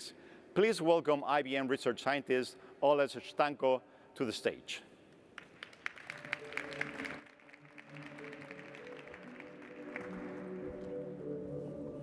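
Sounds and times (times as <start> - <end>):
audience applause: 5.4 - 10.8
calm walk-on music: 6.2 - 12.0.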